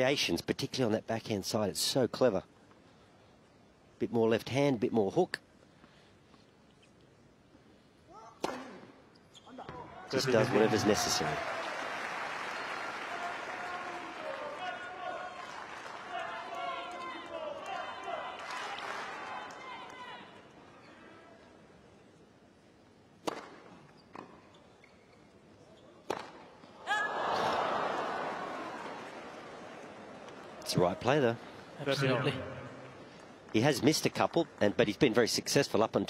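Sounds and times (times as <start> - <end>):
crowd clapping and murmuring: 10.4 - 20.0, 31.4 - 35.3
racquet striking tennis ball: 23.2 - 23.7
tennis ball bouncing: 23.2 - 24.3.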